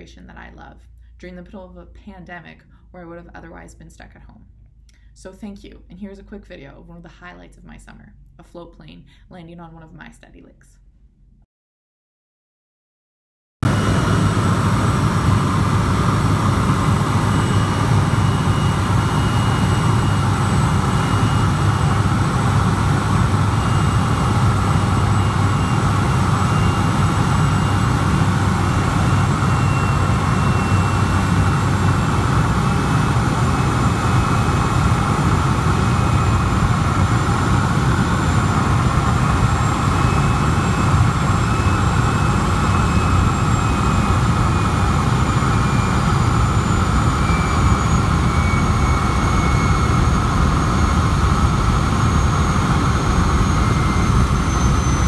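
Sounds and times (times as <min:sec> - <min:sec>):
turboprop engine drone with whine: 0:13.6 - 0:55.0.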